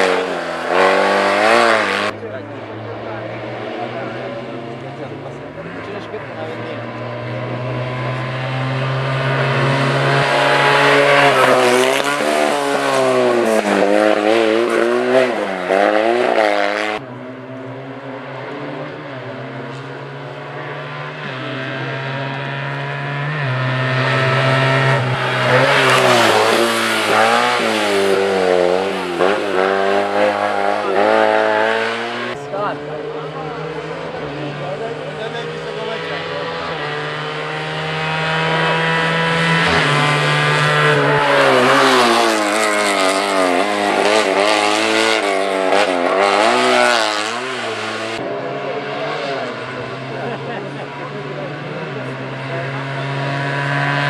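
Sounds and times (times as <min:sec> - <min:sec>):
racing car engines revving: 0:00.0 - 0:54.0.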